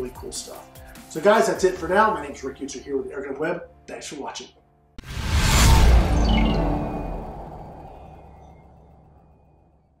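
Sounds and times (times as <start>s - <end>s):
deep boom: 5.0s - 10.0s
bright high tones stepping downward: 5.1s - 9.9s.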